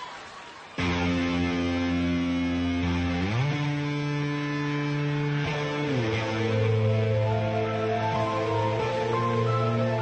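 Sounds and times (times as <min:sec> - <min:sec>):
electric guitar chords: 0:00.8 - 0:10.0.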